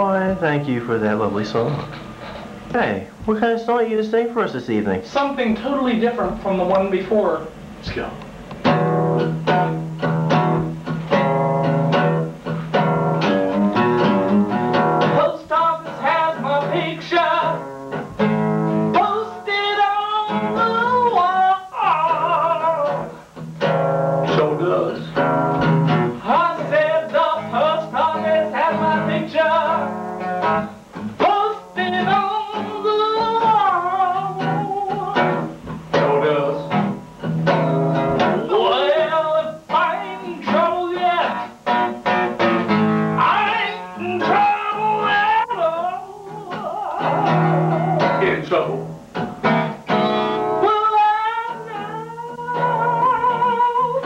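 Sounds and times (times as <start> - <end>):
man singing: 0.0 - 1.9, 15.0 - 17.8, 18.9 - 23.2, 24.2 - 25.2, 26.1 - 30.0, 31.2 - 37.0, 38.2 - 41.6, 43.2 - 49.0, 50.5 - 54.0
acoustic guitar strumming chords: 0.0 - 54.0.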